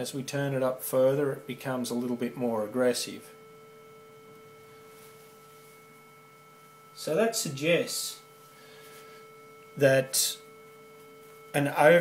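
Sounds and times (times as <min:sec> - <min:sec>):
overdriven sine test tone: 0:00.0 - 0:12.0.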